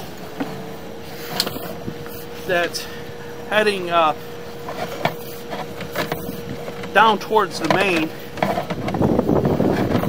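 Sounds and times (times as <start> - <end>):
faint high equipment hum: 0.0 - 10.0.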